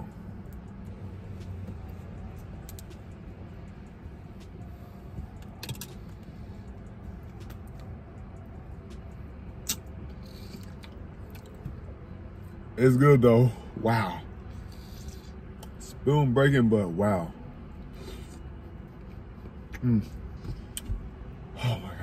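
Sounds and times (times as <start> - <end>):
low car cabin hum: 0.0 - 22.0.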